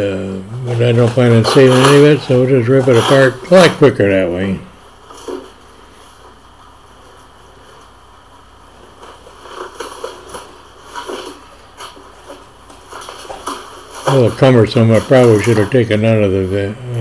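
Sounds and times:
cardboard boxes rustling and tearing: 8.9 - 15.9.

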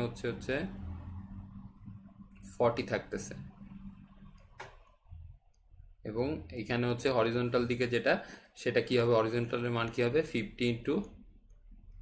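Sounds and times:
man speaking: 0.0 - 0.8, 2.4 - 3.5, 6.0 - 11.2.

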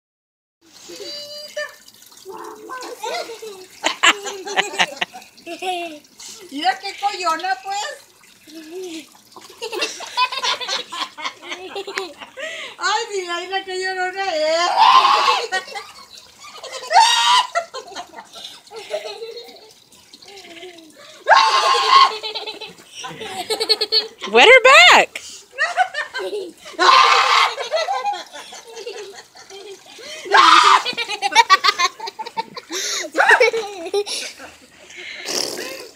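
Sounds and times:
people talking and laughing: 2.9 - 6.3, 8.5 - 12.7, 22.2 - 35.5
person calling out: 24.3 - 25.2.

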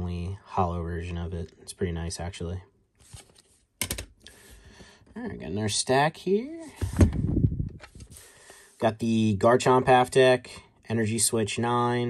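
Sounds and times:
light rustle of handling: 3.0 - 3.7.

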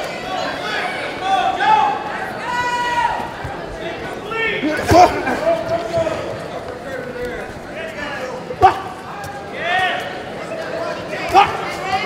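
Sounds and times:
arena room noise: 0.0 - 12.0.

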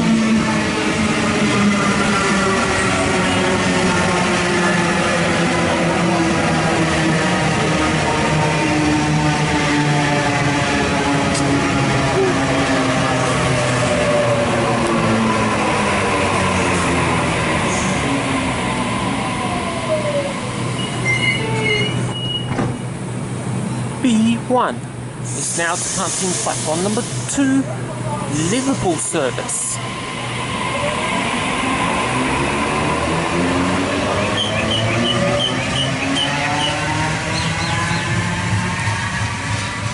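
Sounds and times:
electric train whine: 0.0 - 24.0, 24.8 - 39.9.

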